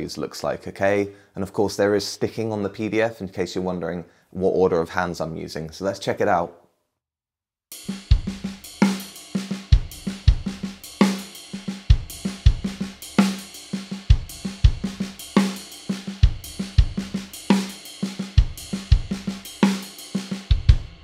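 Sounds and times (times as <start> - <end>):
drum kit groove: 7.7 - 21.0.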